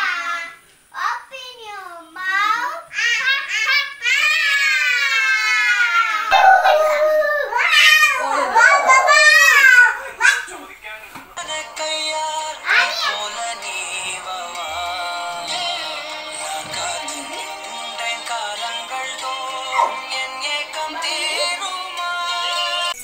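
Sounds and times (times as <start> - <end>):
child crying: 2.9 - 10.5, 12.7 - 13.3
song with singing: 11.2 - 23.0.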